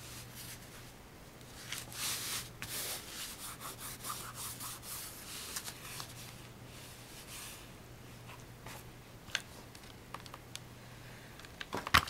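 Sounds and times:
hands rubbing fabric on cardboard: 0:01.6 - 0:06.2.

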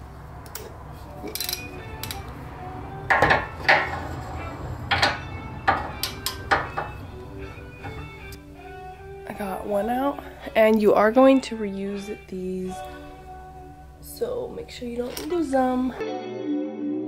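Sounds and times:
background music: 0:00.5 - 0:17.0
socket wrench clinking on metal: 0:01.2 - 0:02.2, 0:04.9 - 0:06.9.

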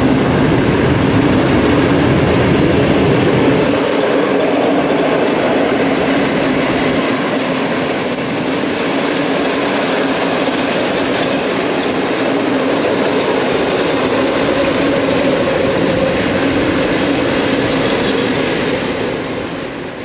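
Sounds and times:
freight train rolling past: 0:00.0 - 0:20.0.

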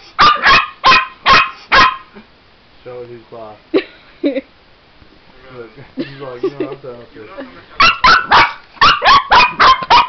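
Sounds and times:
puppy barking: 0:00.2 - 0:02.2, 0:07.8 - 0:10.0.

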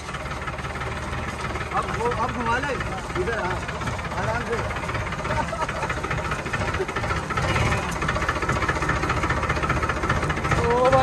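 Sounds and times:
tractor diesel engine running: 0:00.0 - 0:11.0.

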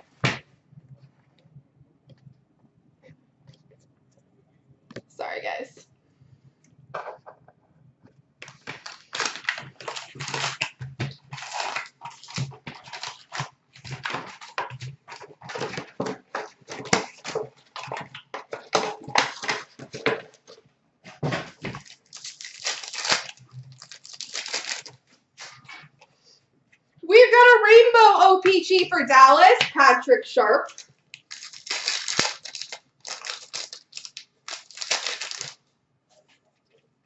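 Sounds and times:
plastic wrapping crinkling and tearing: 0:08.4 - 0:20.6, 0:21.3 - 0:25.8, 0:30.7 - 0:35.6.

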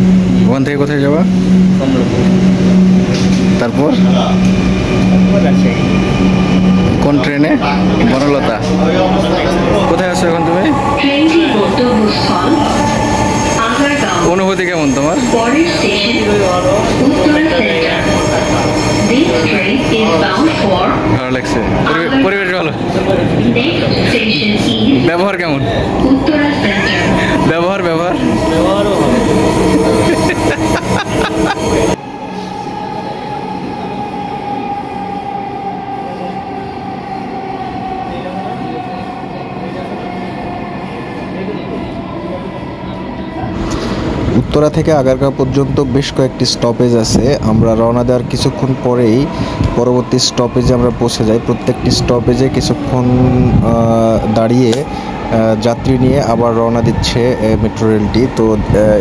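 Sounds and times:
low rumbling noise: 0:00.0 - 0:16.0, 0:43.1 - 0:59.0
steady background noise: 0:00.0 - 0:59.0
train carriage hum: 0:00.0 - 0:59.0.

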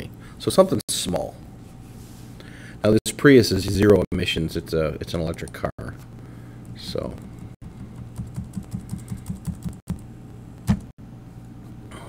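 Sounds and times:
low steady hum: 0:00.0 - 0:12.0
computer keyboard keys clicking: 0:08.2 - 0:09.8.

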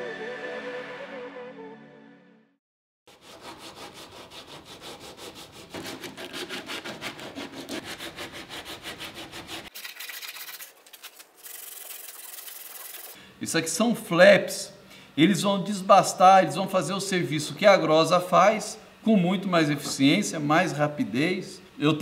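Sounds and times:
wood rasp scraping wood: 0:03.1 - 0:09.7.

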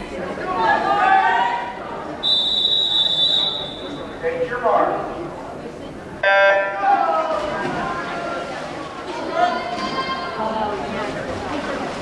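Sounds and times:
voices in a pool hall: 0:00.0 - 0:12.0
high whistle blast: 0:02.2 - 0:04.0.

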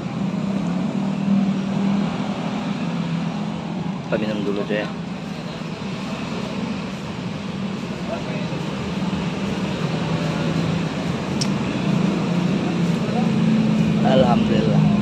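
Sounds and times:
vehicle engine hum: 0:00.0 - 0:15.0.

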